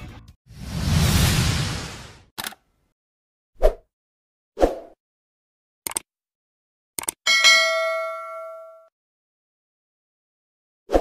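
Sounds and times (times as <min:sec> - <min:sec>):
bright bell ding: 0:07.3 - 0:08.9.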